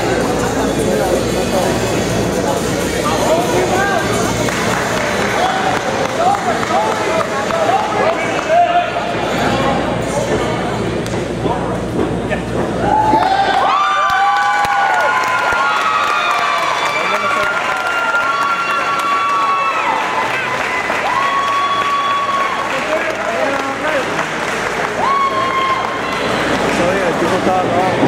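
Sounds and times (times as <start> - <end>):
crowd cheering and shouting: 12.8 - 28.0.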